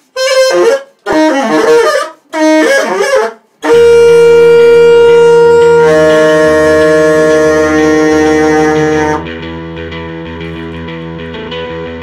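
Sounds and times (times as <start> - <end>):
saxophone long note: 0.2 - 9.4.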